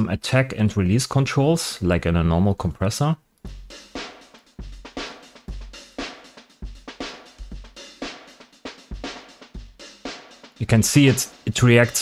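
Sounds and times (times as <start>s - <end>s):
drum kit playing a steady beat: 3.4s - 12.0s.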